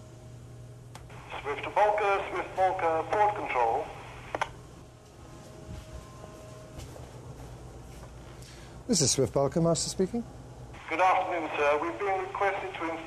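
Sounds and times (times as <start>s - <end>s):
steady low hum: 0.0s - 13.0s
tinny voice over radio speaker: 1.1s - 4.1s, 10.8s - 13.0s.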